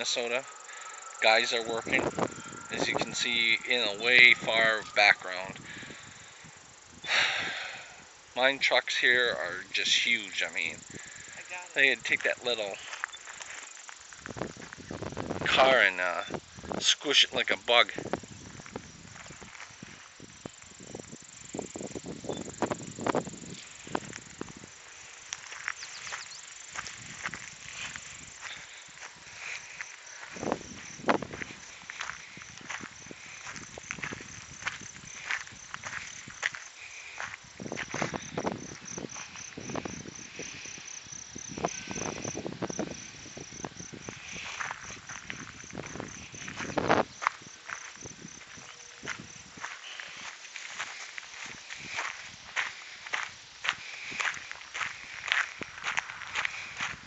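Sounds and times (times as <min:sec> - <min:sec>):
high-pitched trill: 0:00.0 - 0:06.1
footsteps on gravel: 0:00.0 - 0:06.2, 0:11.0 - 0:14.9, 0:23.2 - 0:40.6, 0:44.0 - 0:57.0.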